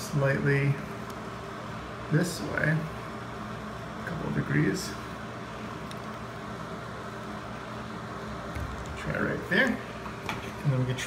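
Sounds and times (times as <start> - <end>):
low machine hum with hiss: 0.0 - 11.0.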